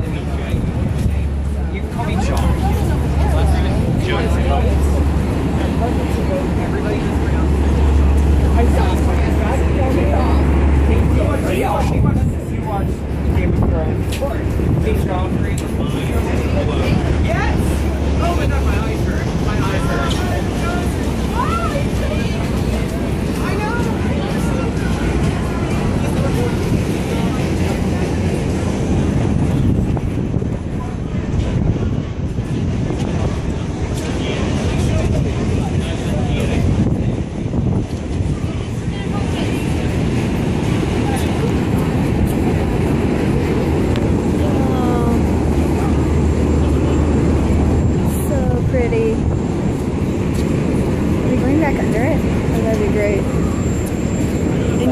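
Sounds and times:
dense low rumble: 0.0s - 54.9s
faint indistinct voices: 0.0s - 54.9s
low engine hum: 0.0s - 54.9s
wind buffeting microphone: 0.0s - 54.9s.

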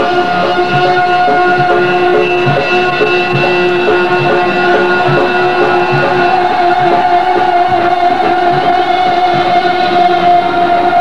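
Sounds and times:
faint drum beats: 0.0s - 11.0s
long held loud note: 0.0s - 11.0s.

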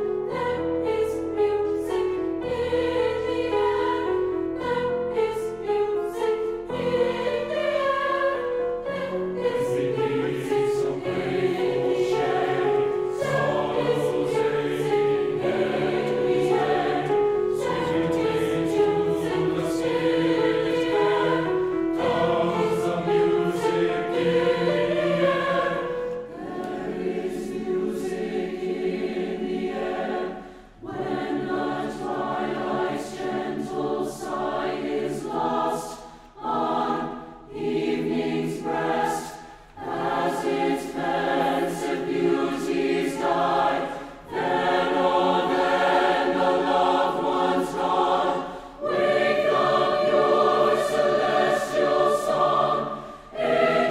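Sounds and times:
mixed choir singing: 0.0s - 53.9s.

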